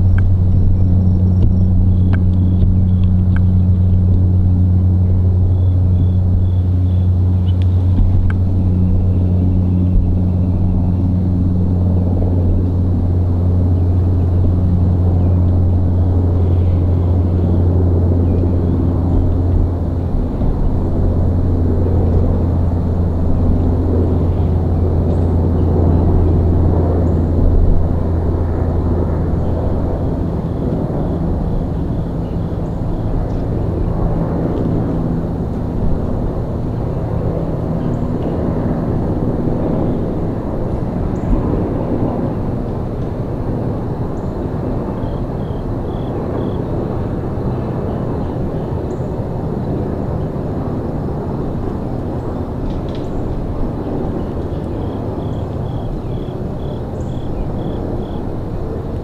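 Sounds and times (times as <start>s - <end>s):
distant engine drone: 0.0s - 59.0s
low outdoor rumble: 0.0s - 59.0s.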